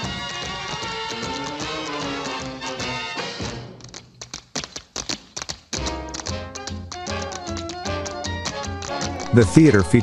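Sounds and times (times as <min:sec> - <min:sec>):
big band music: 0:00.0 - 0:03.8
tap shoes clicking: 0:00.0 - 0:09.4.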